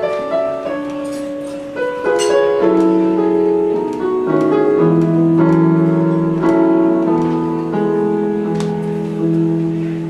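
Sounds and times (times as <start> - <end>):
electronic keyboard piano chords: 0.0 - 10.0.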